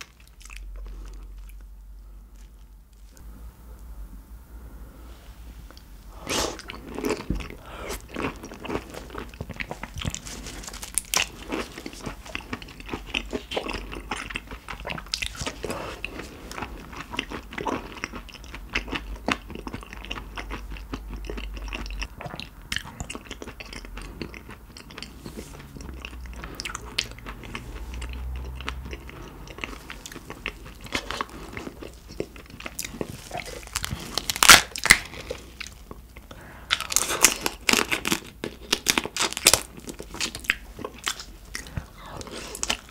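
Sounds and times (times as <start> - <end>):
chewing raw shrimp: 6.2 - 42.9.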